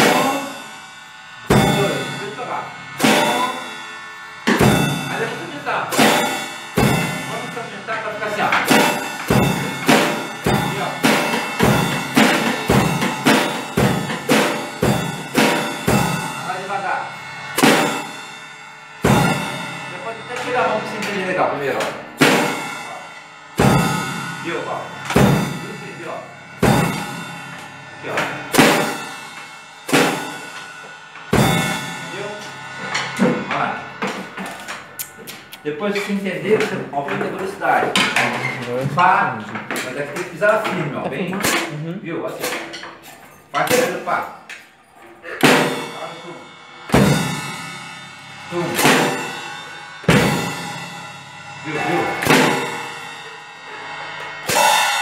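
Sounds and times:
cymbal ringing: 0.0 - 41.7, 42.3 - 55.0.

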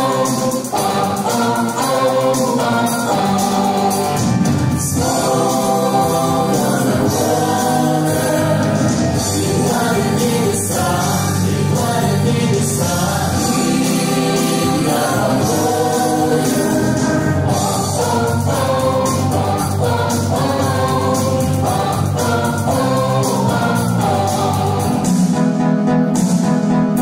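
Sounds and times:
mixed voices singing in harmony: 0.0 - 25.4
rock instrumental accompaniment: 0.0 - 27.0.

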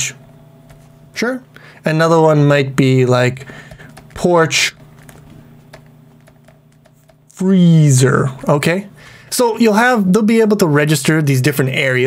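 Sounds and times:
stylus ticking and scratching: 3.5 - 7.4.

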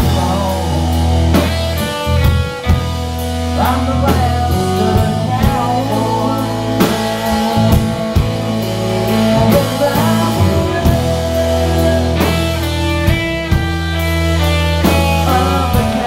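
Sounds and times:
man singing: 0.0 - 2.2, 3.5 - 13.6, 14.8 - 16.0
drum kit: 0.0 - 16.0
electric bass: 0.0 - 16.0
electric guitars: 0.0 - 16.0.

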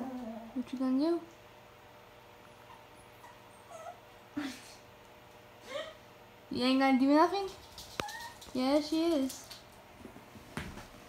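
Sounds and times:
puppy whimpering: 0.0 - 0.6, 2.4 - 4.2, 7.9 - 8.6.

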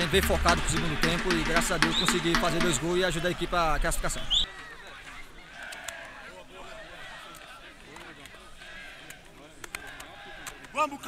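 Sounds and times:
crowd shouting and calling: 0.0 - 11.0.

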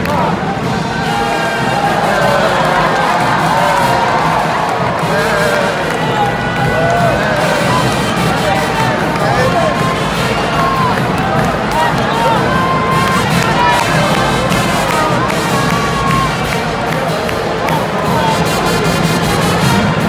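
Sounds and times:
crowd cheering and shouting: 0.0 - 20.0
music playing: 0.0 - 20.0.

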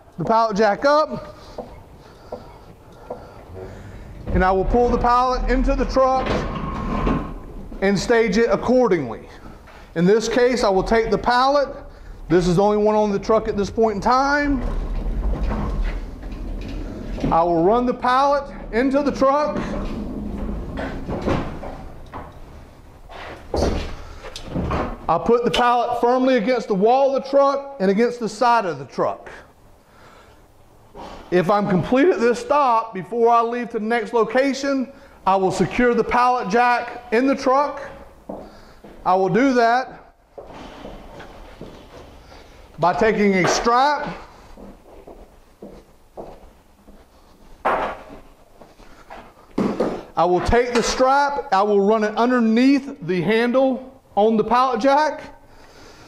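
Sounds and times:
pallet jack wheels rumbling: 3.0 - 8.1, 11.6 - 23.3.

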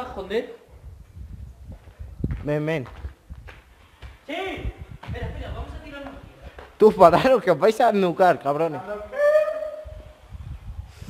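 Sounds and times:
man calling a hoot-like note: 8.9 - 10.0.

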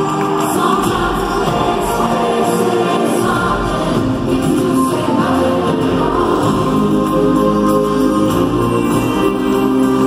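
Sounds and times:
pop concert singing over band: 0.0 - 10.0.

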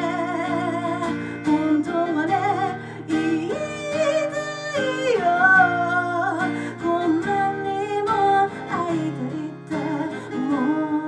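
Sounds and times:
person singing: 0.0 - 11.0
strummed acoustic guitar: 0.0 - 11.0.

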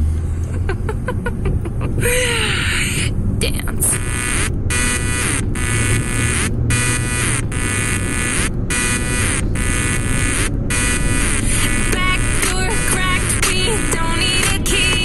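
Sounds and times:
car driving on highway rumble: 0.0 - 15.0
loud electronic buzz: 3.9 - 15.0.

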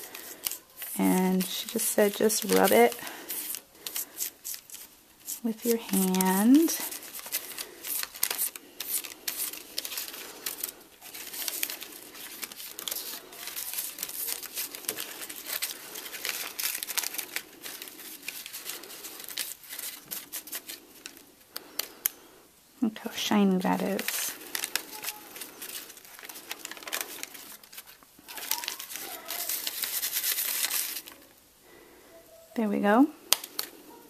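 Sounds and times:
paper crinkling and rustling: 0.0 - 22.2, 23.0 - 31.4, 33.3 - 34.0.

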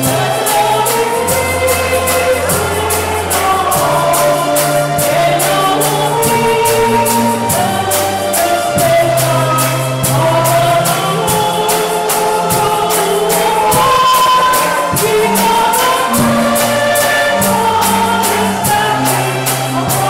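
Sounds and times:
bass line: 0.0 - 20.0
choir singing gospel song: 0.0 - 20.0
steady high percussion beat: 0.0 - 20.0.

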